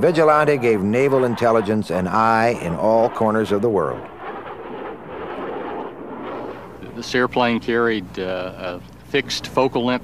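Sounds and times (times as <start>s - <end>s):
jet engines rumbling: 0.0s - 10.0s.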